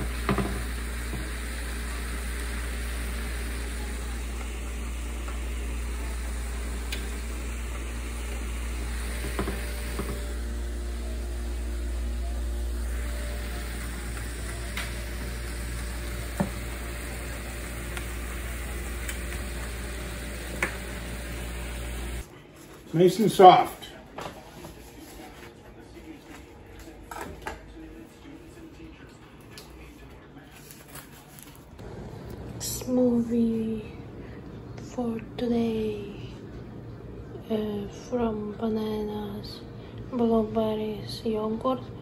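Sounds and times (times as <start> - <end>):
soup bubbling and sizzling: 0.0 - 22.2
low hum: 0.0 - 22.3.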